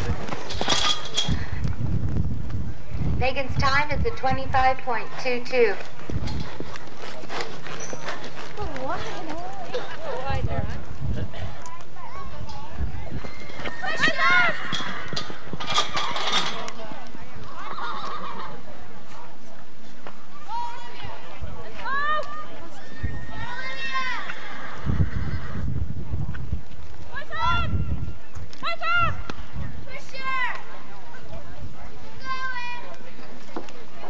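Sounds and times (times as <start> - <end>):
horse hooves galloping on dirt: 0.0 - 1.0, 3.9 - 11.9.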